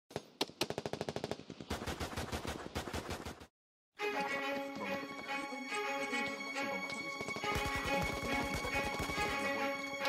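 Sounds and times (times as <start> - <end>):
automatic gunfire: 7.5 - 9.5.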